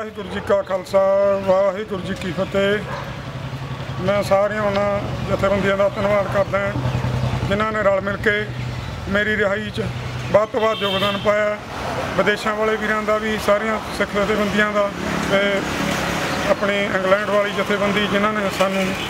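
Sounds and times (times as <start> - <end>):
man speaking: 0.0 - 3.0, 4.0 - 15.7, 16.5 - 19.0.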